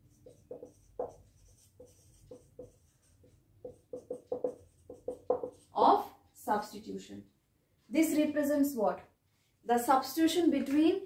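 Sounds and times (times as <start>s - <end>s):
marker writing on whiteboard: 0.0s - 6.1s.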